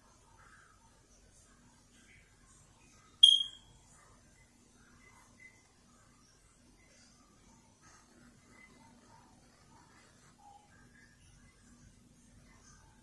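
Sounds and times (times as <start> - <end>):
high-pitched electronic chirp: 3.2 - 3.7.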